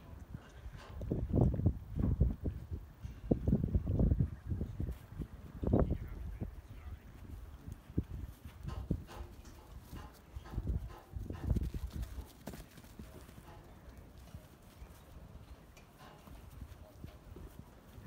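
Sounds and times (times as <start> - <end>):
sheep hooves thudding: 7.1 - 18.0.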